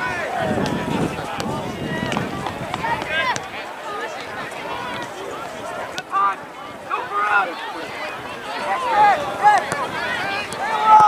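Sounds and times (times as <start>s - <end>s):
voices shouting outdoors: 0.0s - 11.0s.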